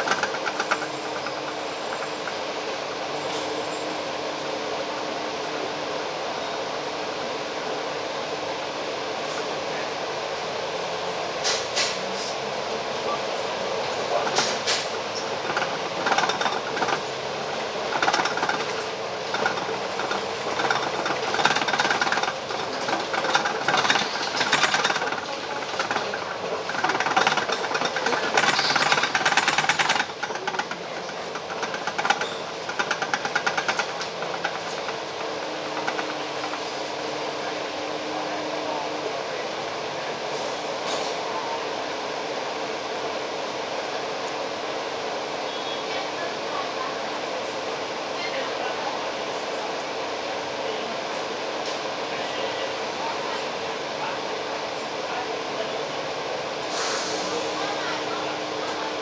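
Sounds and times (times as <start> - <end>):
bus engine running: 0.0 - 59.0.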